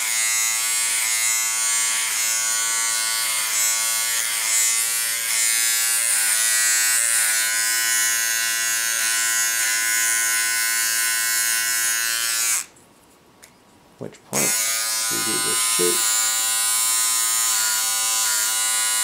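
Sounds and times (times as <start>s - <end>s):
electric hair clipper buzzing: 0.0s - 12.7s, 14.4s - 19.0s.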